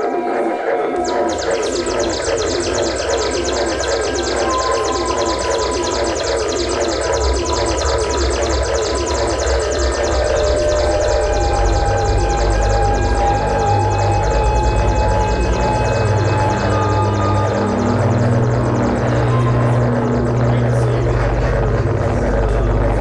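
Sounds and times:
held synthesizer tones: 0.0 - 23.0
pulsing electronic noise music: 0.0 - 23.0
low rumbling drone: 1.0 - 23.0.

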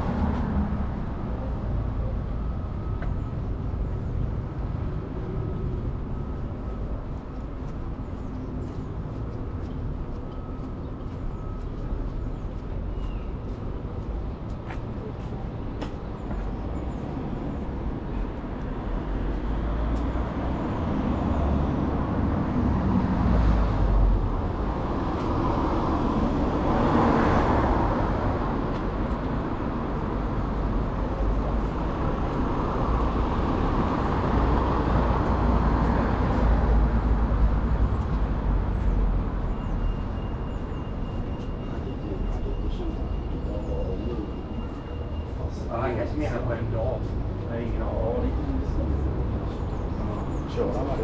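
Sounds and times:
steady low traffic rumble: 0.0 - 51.0
vehicles passing: 0.0 - 51.0.

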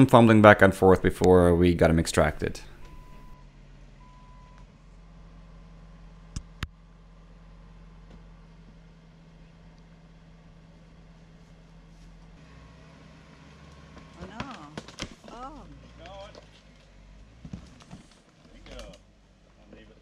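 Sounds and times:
car engine idling: 0.0 - 20.0
short beeps: 2.8 - 3.4.

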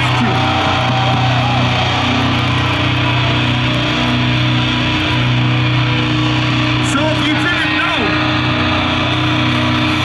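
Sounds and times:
bass guitar: 0.0 - 10.0
distorted electric guitars: 0.0 - 10.0
drums: 0.0 - 10.0.

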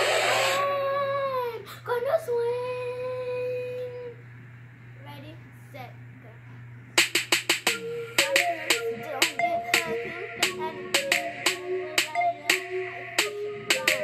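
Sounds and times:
girl singing long notes: 0.6 - 4.2, 7.7 - 14.0
music: 7.0 - 14.0
song with clicking beat: 7.0 - 14.0.

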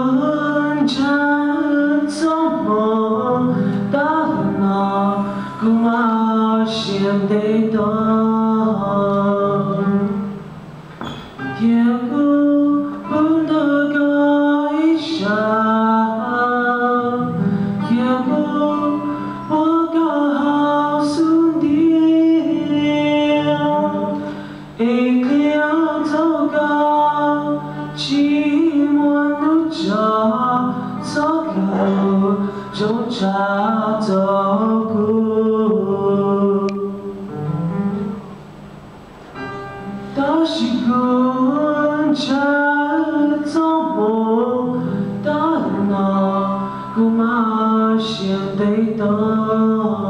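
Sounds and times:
man singing a ballad: 0.0 - 10.4, 11.4 - 37.4, 40.0 - 50.0
acoustic guitar: 0.0 - 50.0.

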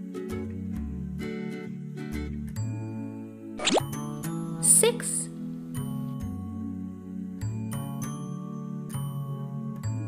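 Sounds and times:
gentle children's music: 0.0 - 10.0
rising plop sound effect: 3.6 - 4.0.

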